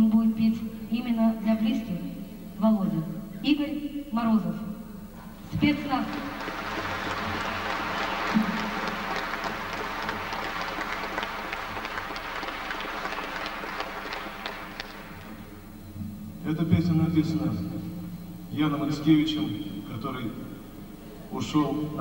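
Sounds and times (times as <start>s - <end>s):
audience applauding: 5.6s - 15.7s.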